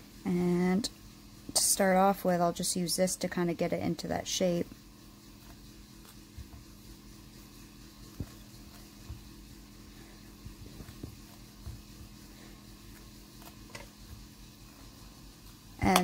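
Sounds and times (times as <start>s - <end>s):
room hum: 0.0s - 16.0s.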